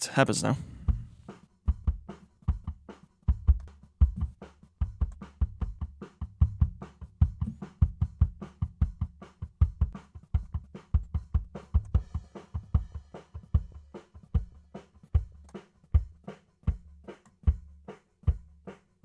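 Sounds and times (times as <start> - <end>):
kick drum: 0.7 - 12.9.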